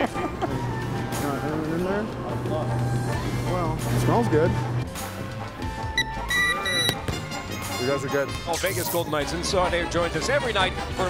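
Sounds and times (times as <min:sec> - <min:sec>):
metal detector alarm beeps: 0:06.0 - 0:07.0.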